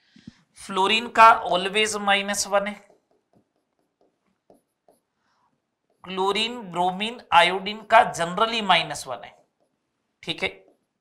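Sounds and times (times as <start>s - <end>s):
marker tip tapping: 2.8s - 5.1s
marker strokes on whiteboard: 2.8s - 5.2s.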